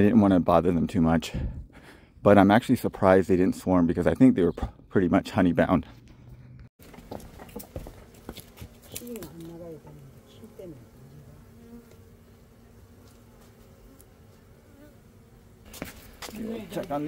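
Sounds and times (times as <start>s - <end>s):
honey bees buzzing: 6.8s - 17.0s.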